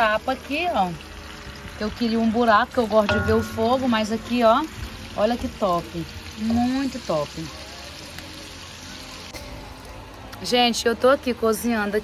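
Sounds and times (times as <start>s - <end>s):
bacon sizzling in a pan: 0.0s - 12.0s.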